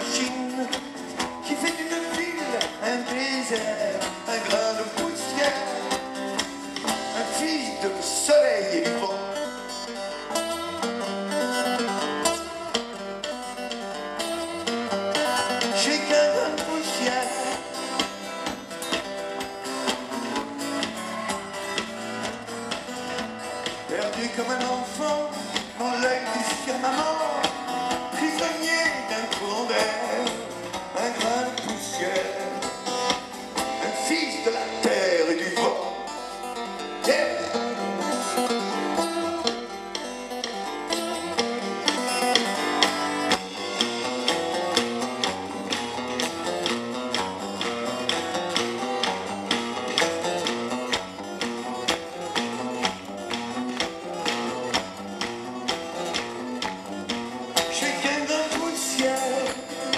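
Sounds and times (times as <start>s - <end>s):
live rock band playing: 0.0s - 59.9s
steady drum beat: 39.4s - 59.9s.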